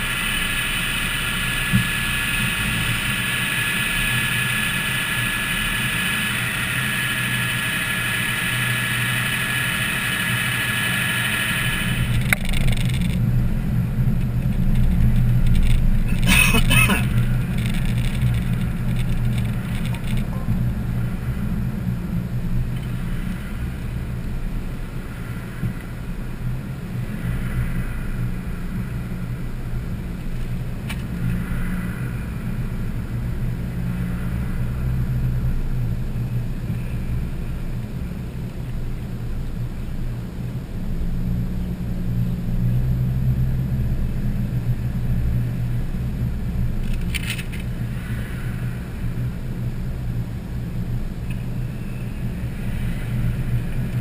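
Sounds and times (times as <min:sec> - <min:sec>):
steady hiss with thin whine: 0:00.0 - 0:40.5, 0:41.2 - 0:54.0
car engine and road rumble: 0:00.0 - 0:54.0.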